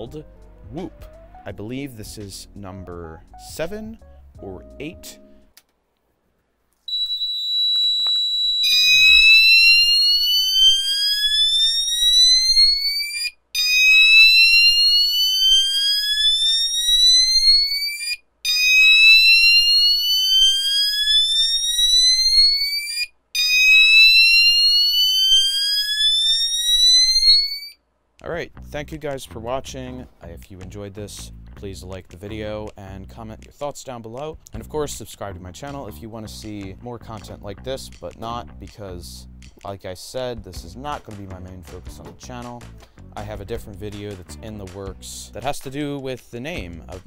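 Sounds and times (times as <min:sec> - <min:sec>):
upward-sweeping alarm whoops: 0:06.9 - 0:27.8.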